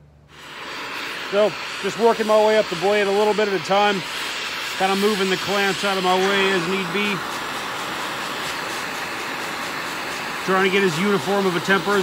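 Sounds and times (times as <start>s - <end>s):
cutting torch flame hissing: 0.3s - 12.0s.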